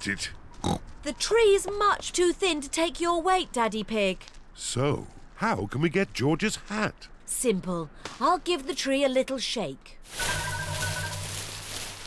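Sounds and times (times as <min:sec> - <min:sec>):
rustle of shaken leaves: 0:10.0 - 0:12.0.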